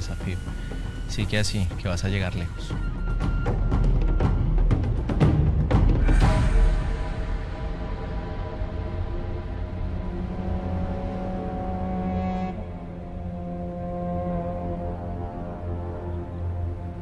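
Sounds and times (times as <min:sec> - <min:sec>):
low drone: 0:06.0 - 0:17.0
sustained chords: 0:06.1 - 0:17.0.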